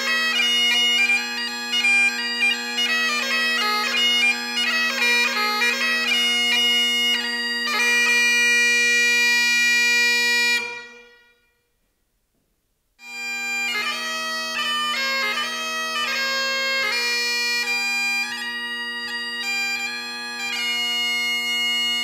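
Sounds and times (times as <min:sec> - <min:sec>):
bagpipe drones: 0:00.0 - 0:11.6, 0:13.0 - 0:22.0
bagpipe chanter melody: 0:00.0 - 0:11.7, 0:13.0 - 0:22.0.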